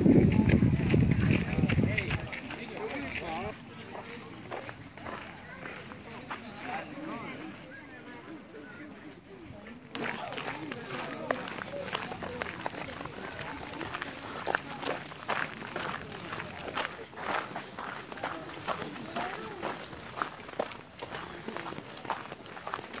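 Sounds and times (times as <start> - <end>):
footsteps outdoors: 0.0 - 23.0
people talking: 0.0 - 23.0.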